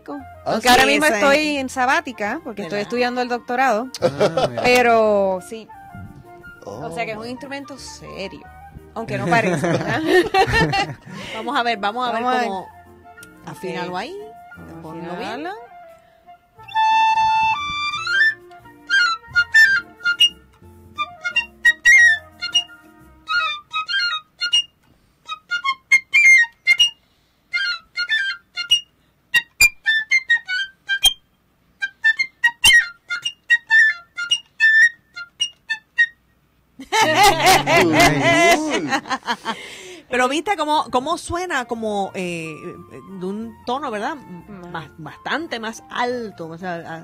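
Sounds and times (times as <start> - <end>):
solo piccolo: 16.6 - 24.7.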